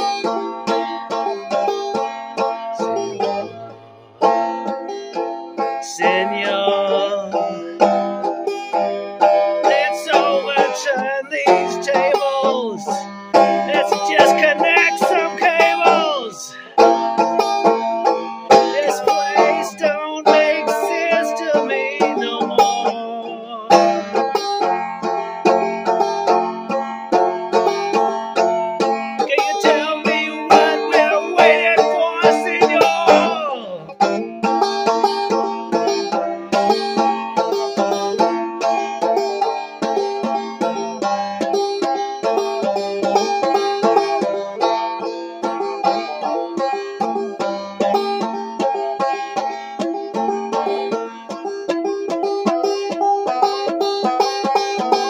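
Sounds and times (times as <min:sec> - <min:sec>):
banjo strumming chords: 0:00.0 - 0:55.0
wavering higher melody line: 0:29.3 - 0:33.9.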